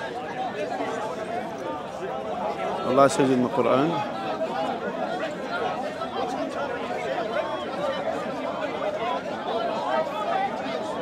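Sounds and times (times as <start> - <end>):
crowd chatter outdoors: 0.0 - 11.0.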